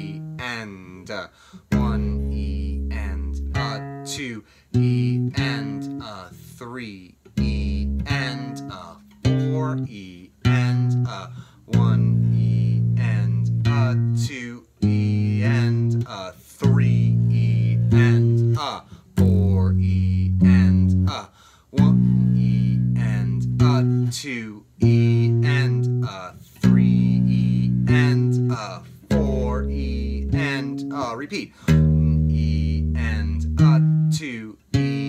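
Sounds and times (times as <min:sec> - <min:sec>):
electric bass playing: 0:00.0 - 0:00.5, 0:01.6 - 0:06.5, 0:07.3 - 0:21.2, 0:21.8 - 0:24.2, 0:24.8 - 0:35.0.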